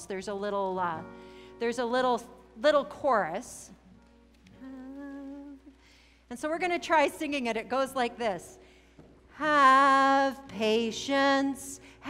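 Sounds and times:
woman humming: 4.6 - 5.7.

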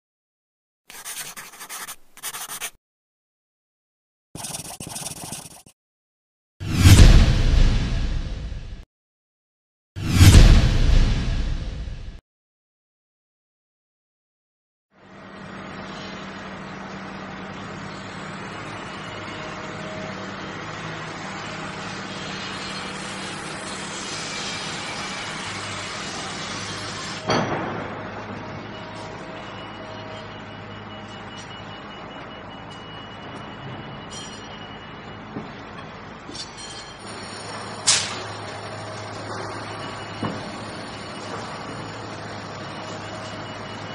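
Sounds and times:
pen scratching on paper: 0.9 - 2.8, 4.4 - 5.8
loud thump: 6.7 - 8.8.

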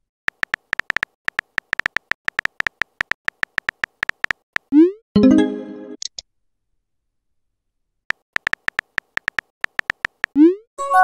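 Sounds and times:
keyboard typing pinging clicks: 0.3 - 4.7, 8.1 - 10.4.

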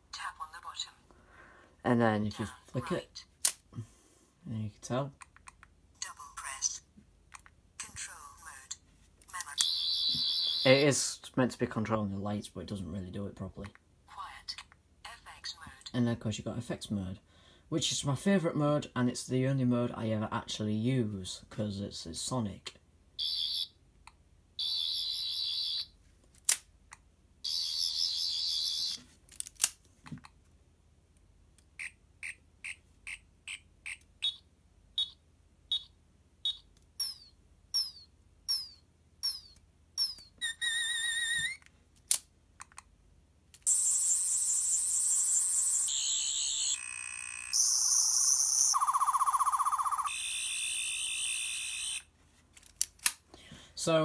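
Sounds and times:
electronic chirps and beeps: 9.5 - 10.9, 24.6 - 25.9, 33.1 - 41.4, 43.7 - 52.0
high electronic buzzing: 43.7 - 52.0
warbling electronic tones: 43.7 - 52.0.

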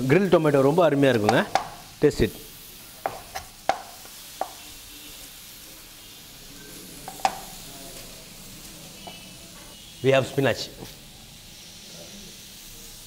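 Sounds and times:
food sizzling in a pan: 0.0 - 13.0.

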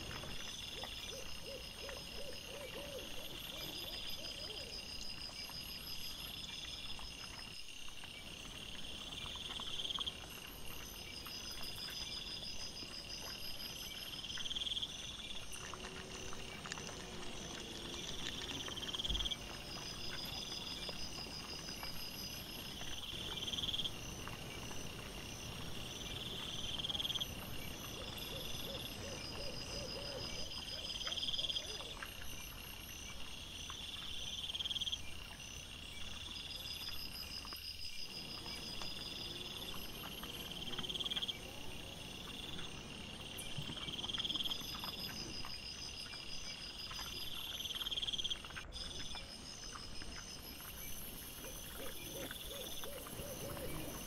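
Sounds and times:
night insects chirping: 0.0 - 54.0.

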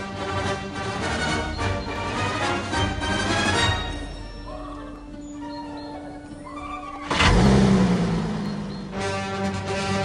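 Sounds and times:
car engine starting and running: 6.2 - 10.0.

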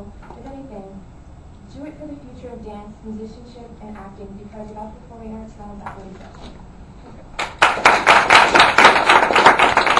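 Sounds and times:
audience applauding: 7.4 - 9.9.

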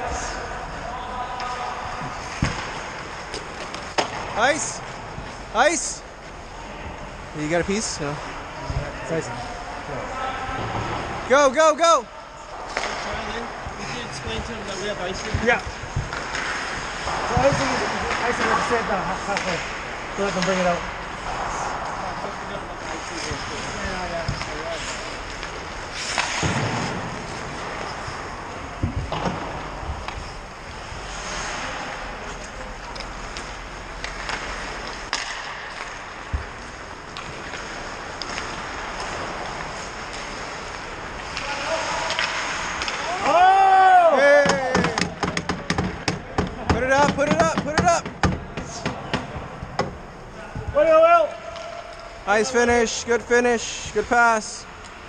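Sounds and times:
skates scraping ice: 12.5 - 45.2
stick and puck knocks: 33.0 - 36.5
players shouting and whooping: 43.0 - 45.1.

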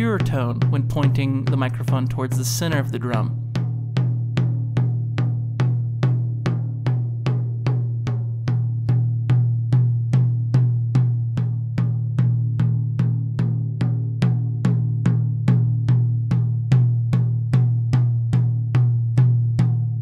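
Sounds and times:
drum struck with stick: 0.0 - 20.0.

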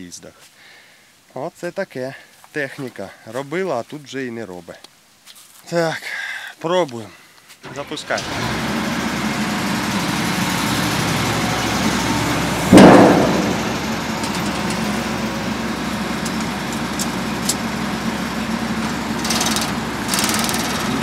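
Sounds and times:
diesel engine idling: 7.6 - 21.0
loud thump: 12.7 - 14.0.

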